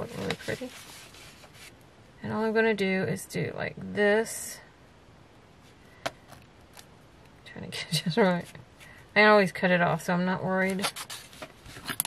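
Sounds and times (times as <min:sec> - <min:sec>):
paper and tape handling: 0:00.0 - 0:01.8, 0:10.6 - 0:12.0.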